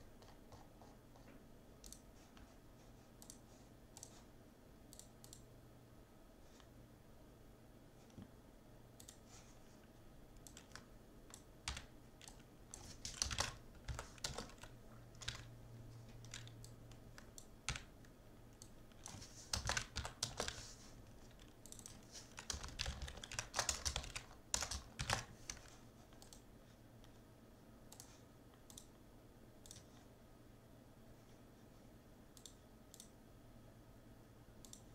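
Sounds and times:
faint low hum: 0:00.0 - 0:34.9
computer keyboard typing: 0:00.1 - 0:02.1, 0:03.2 - 0:04.2, 0:09.0 - 0:09.3, 0:10.4 - 0:26.5, 0:27.9 - 0:29.0, 0:29.6 - 0:30.0, 0:34.6 - 0:34.9.

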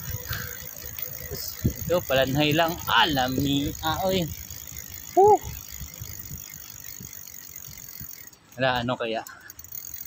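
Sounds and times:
light rattling: 0:00.0 - 0:10.0
wind and road rumble: 0:00.0 - 0:10.0
rider's vocal exclamation: 0:05.1 - 0:05.6.

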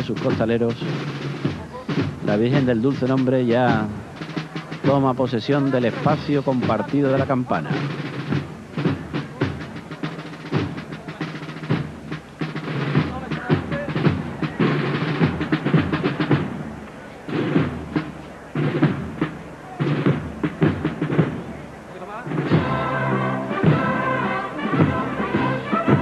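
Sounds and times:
drums: 0:00.0 - 0:26.0
marching band playing: 0:00.0 - 0:26.0.

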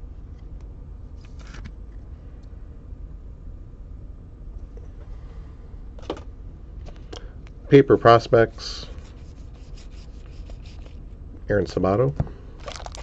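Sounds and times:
low steady hum: 0:00.0 - 0:13.0
card scraping in plastic sleeve: 0:08.8 - 0:11.0, 0:12.6 - 0:13.0.

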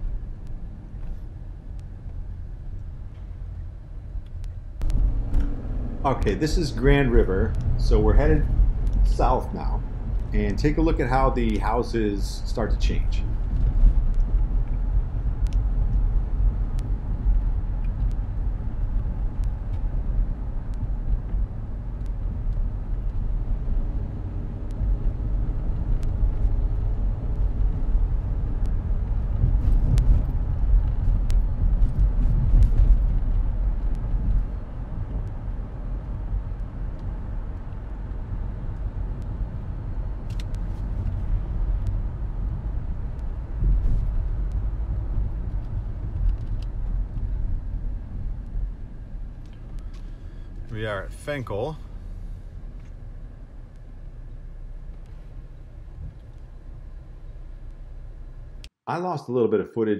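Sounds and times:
car interior road and engine rumble: 0:00.0 - 0:58.7.

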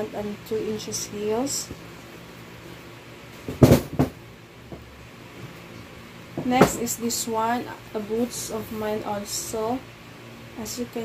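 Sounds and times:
boot thumping and knocking: 0:03.4 - 0:04.9.

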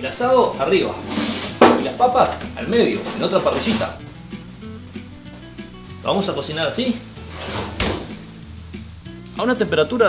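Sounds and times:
background music: 0:00.0 - 0:10.0
oven door swinging shut: 0:07.4 - 0:08.2.

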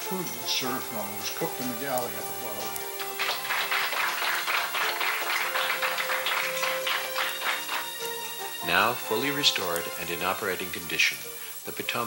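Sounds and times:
background music with held notes: 0:00.0 - 0:12.0
children clapping hands: 0:01.8 - 0:10.0.

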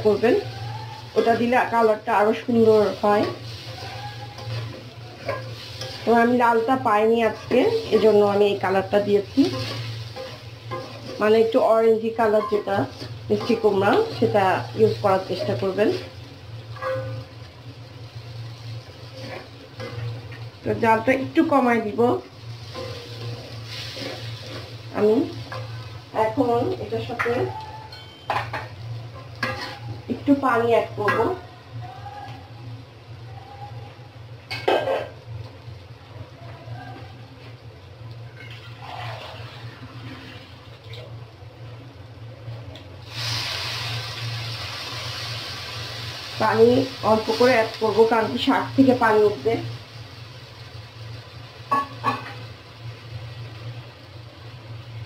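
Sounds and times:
spatula stirring in a wok: 0:00.0 - 0:31.4, 0:38.2 - 0:40.9
food frying: 0:00.0 - 0:55.0
pumpkin sizzling in oil: 0:00.0 - 0:55.0
spatula scraping pan: 0:02.5 - 0:06.6, 0:07.2 - 0:08.4, 0:09.3 - 0:11.6, 0:19.1 - 0:20.2, 0:22.6 - 0:25.8, 0:29.2 - 0:30.0, 0:38.4 - 0:40.6.

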